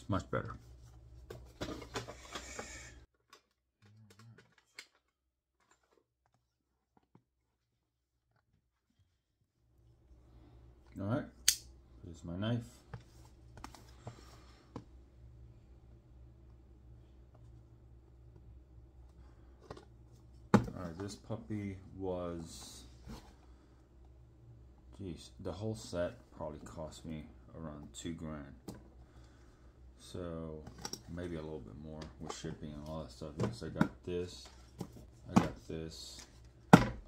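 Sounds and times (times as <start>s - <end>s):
steady low hum: 9.7s - 37.0s.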